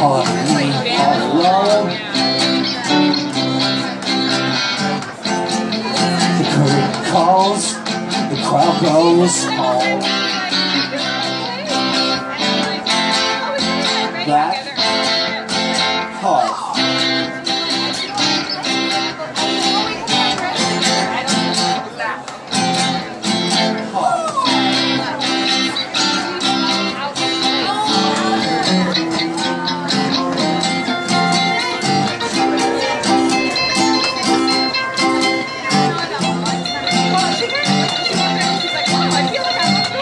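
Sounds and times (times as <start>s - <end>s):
sliding guitar notes: 0.0s - 40.0s
strummed guitars: 0.0s - 40.0s.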